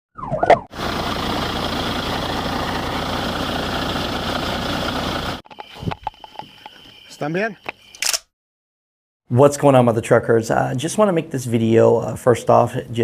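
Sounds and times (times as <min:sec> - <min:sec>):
police siren chirp: 0:00.2 - 0:04.8.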